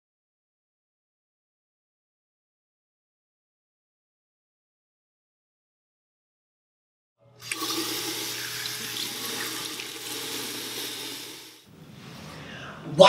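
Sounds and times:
water running from faucet: 0:07.4 - 0:11.7.

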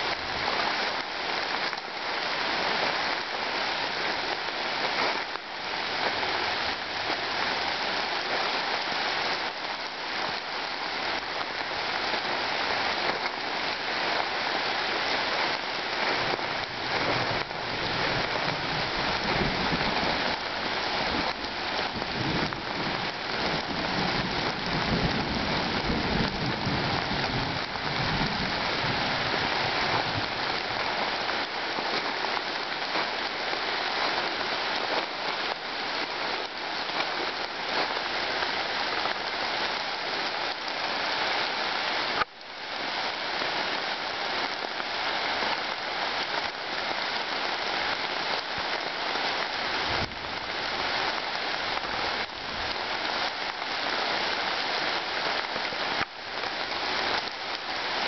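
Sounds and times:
rain falling on leaves: 0:00.0 - 0:58.0.

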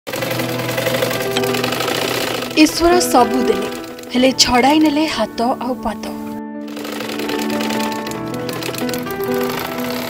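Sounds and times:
sewing machine stitching: 0:00.1 - 0:05.0, 0:06.7 - 0:10.0
background music with sustained notes: 0:00.1 - 0:10.0.

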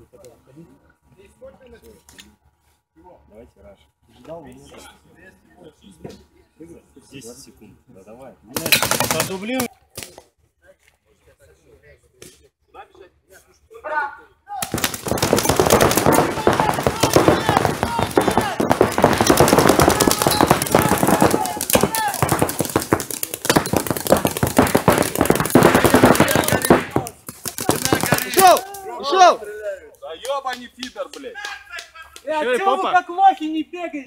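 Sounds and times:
paintball markers firing rapidly: 0:08.6 - 0:10.1, 0:14.6 - 0:28.8.

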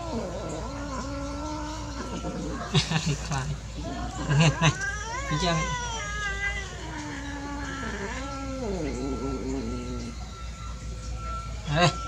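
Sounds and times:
kitten yowling: 0:00.0 - 0:02.7, 0:03.9 - 0:10.2.

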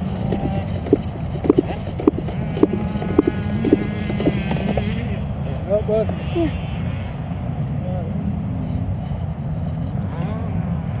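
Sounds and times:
dirt bike engine idling: 0:00.0 - 0:06.0.

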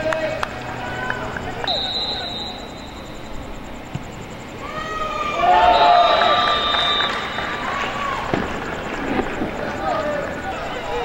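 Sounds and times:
players shouting: 0:00.0 - 0:11.0
steady background noise: 0:00.0 - 0:11.0.

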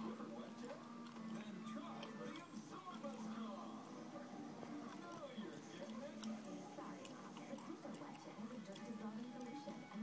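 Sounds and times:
faint voices: 0:00.0 - 0:10.0.

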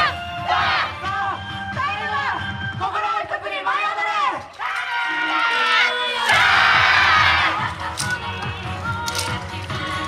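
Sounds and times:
group of voices shouting: 0:04.2 - 0:07.7.

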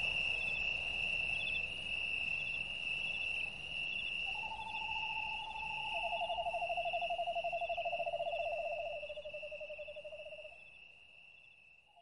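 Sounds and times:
insect trill: 0:00.0 - 0:12.0.

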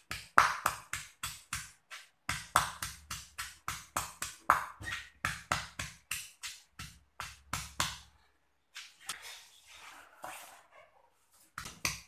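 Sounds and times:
stone pestle pounding in mortar: 0:00.1 - 0:08.0.

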